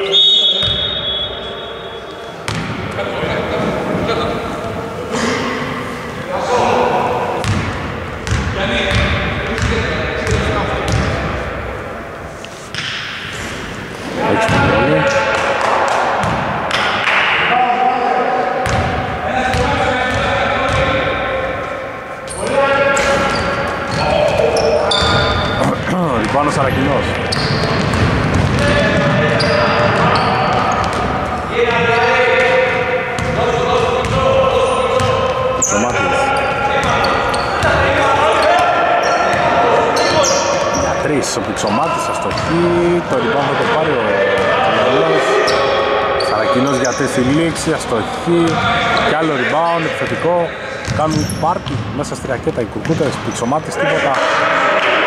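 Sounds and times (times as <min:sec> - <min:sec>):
players calling out: 0:00.0 - 0:55.0
basketball bouncing on wooden floor: 0:50.9 - 0:51.9.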